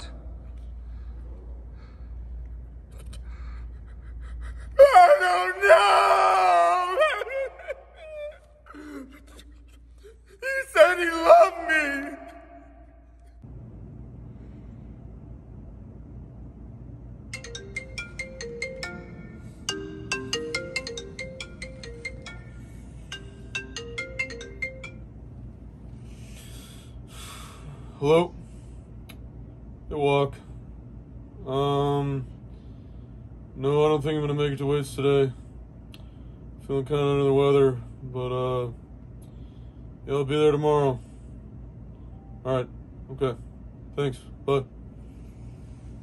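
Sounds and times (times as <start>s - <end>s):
man crying: 3.5s - 12.8s
smartphone ringtone plucked melody: 17.4s - 25.1s.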